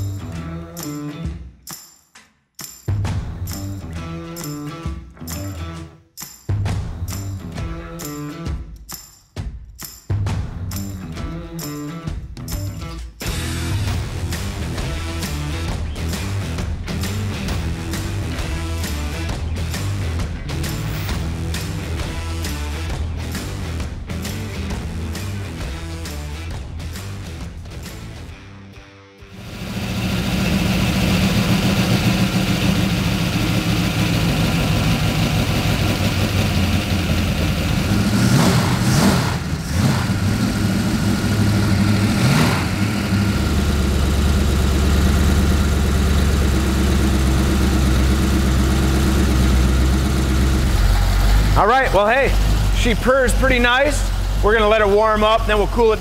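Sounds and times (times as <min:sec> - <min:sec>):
background music: 0:00.0 - 0:02.0, 0:02.7 - 0:29.4, 0:51.5 - 0:56.0
engine starting and idling: 0:29.4 - 0:56.0.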